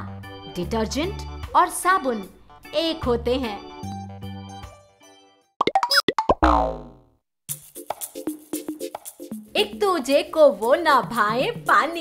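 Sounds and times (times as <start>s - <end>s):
background music: 0.0s - 5.5s, 7.5s - 12.0s
cartoon plop sound effects: 5.6s - 7.0s
falling boing-like slide: 5.8s - 7.1s.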